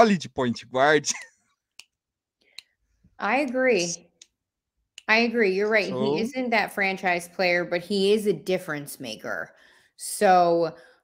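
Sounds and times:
man speaking: 0.0 - 1.3, 5.8 - 6.3.

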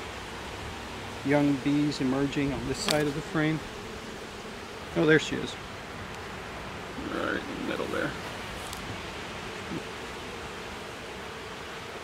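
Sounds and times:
background hiss: 0.0 - 12.0
bees humming: 0.0 - 12.0.

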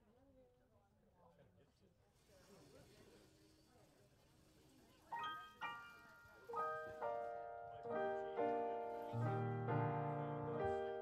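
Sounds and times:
electric piano chords: 5.2 - 11.0.

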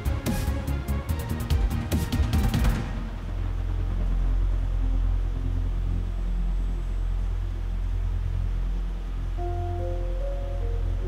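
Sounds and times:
low rumbling drone: 0.0 - 11.0
faint held tones: 9.4 - 11.0.

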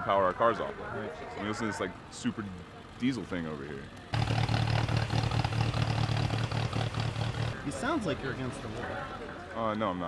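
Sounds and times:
engine idling: 4.2 - 7.7.

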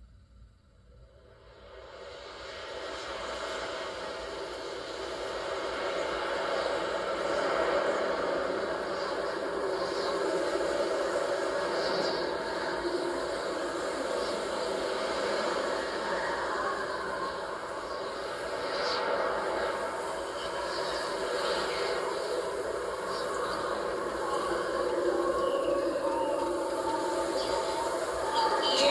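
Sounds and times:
wind-like rushing noise: 1.2 - 28.9.

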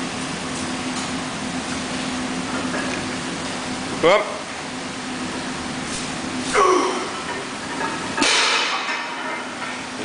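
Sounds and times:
barbell plates clattering: 7.1 - 10.0.

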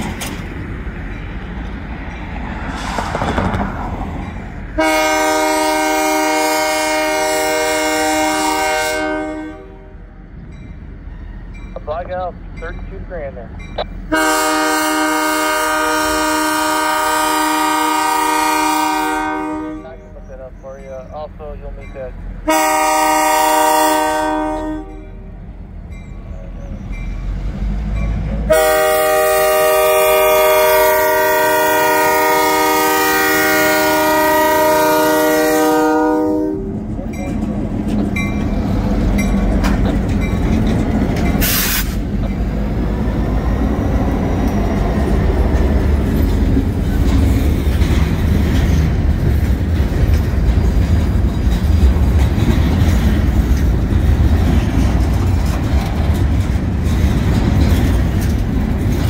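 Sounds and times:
train wheels clacking over rails: 0.0 - 5.6, 36.7 - 59.0
locomotive air horn blasts: 4.8 - 10.0, 14.1 - 20.0, 22.4 - 25.2, 28.5 - 36.7, 41.4 - 42.0.

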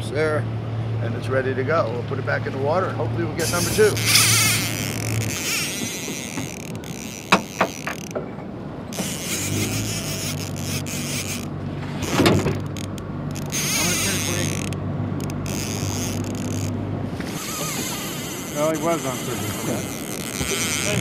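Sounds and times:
boat motor humming: 0.0 - 21.0
wind: 0.0 - 21.0
water noise: 2.2 - 21.0
fishing reel clicks: 3.4 - 8.2, 8.9 - 21.0.

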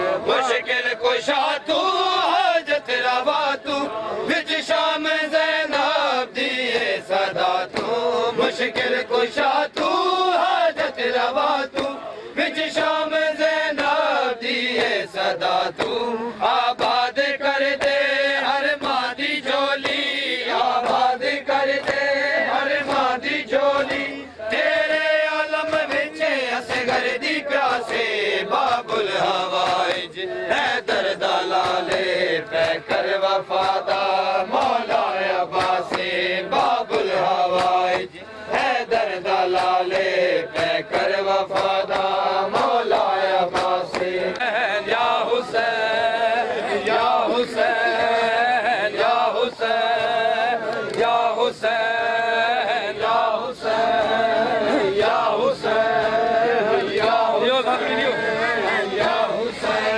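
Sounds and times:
men chanting in unison: 0.0 - 59.9
hands slapping chests: 7.6 - 8.0, 11.6 - 12.0, 14.7 - 16.1, 16.7 - 19.2, 19.8 - 23.2, 25.6 - 45.7.

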